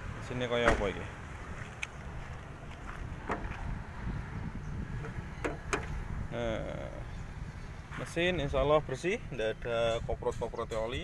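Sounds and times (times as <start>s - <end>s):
wind buffeting microphone: 1.2s - 11.0s.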